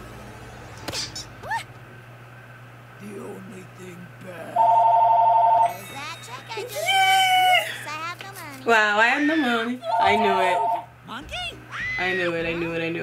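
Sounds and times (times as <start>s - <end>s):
loud trilling bell ring: 5.4s - 7.8s
voices: 5.7s - 13.0s.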